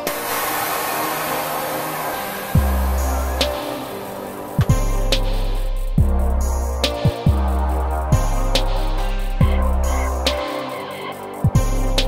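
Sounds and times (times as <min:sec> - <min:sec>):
loud steady hiss: 0:00.0 - 0:12.0.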